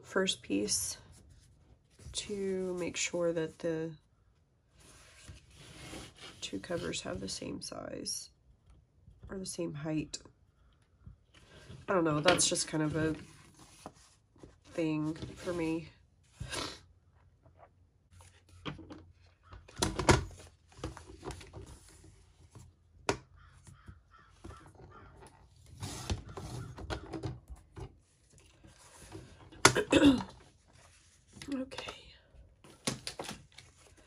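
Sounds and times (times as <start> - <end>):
paper rustling: 12.9 - 15.6.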